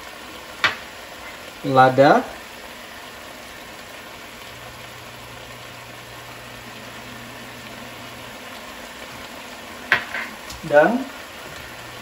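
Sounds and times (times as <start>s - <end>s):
crab sizzling in skillet: 0.0s - 12.0s.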